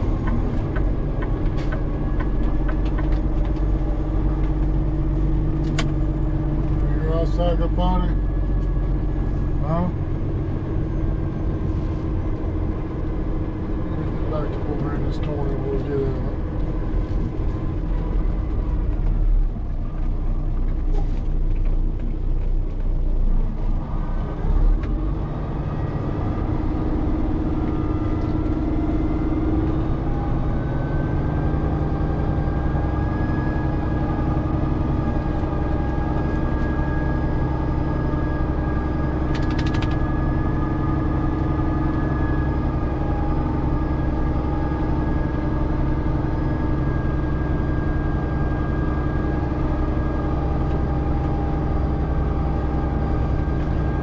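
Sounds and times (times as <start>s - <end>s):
diesel truck engine rumble: 0.0s - 54.0s.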